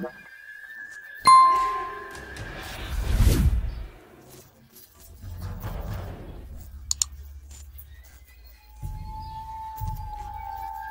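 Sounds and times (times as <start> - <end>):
steady high tone: 1.3 - 2.8.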